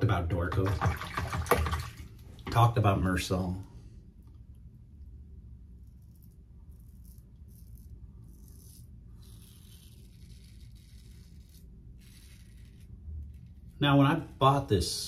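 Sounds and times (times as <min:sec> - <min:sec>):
razor scraping stubble: 0:05.6 - 0:13.9.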